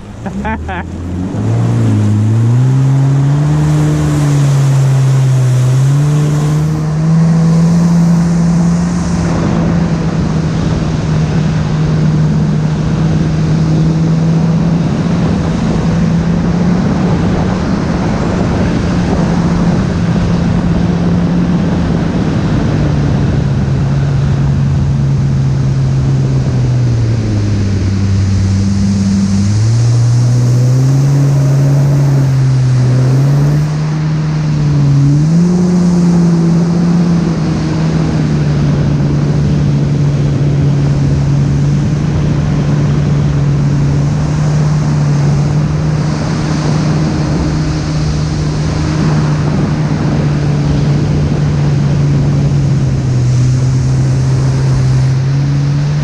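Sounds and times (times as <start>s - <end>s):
water rushing: 0.0s - 56.0s
watercraft engine running: 0.0s - 56.0s
wind: 0.0s - 56.0s.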